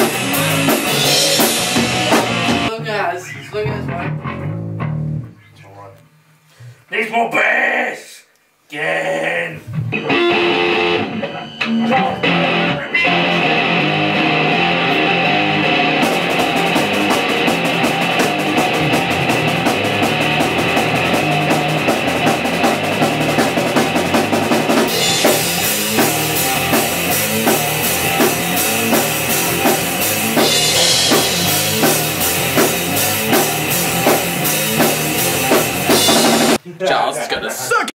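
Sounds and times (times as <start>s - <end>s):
drum kit with cymbals: 0.0s - 2.8s, 15.8s - 36.6s
electric guitars: 0.0s - 2.8s, 3.5s - 5.3s, 9.5s - 36.6s.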